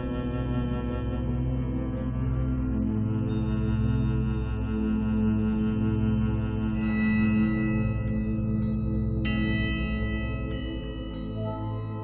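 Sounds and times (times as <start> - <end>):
ambient relaxation music: 0.0 - 12.0.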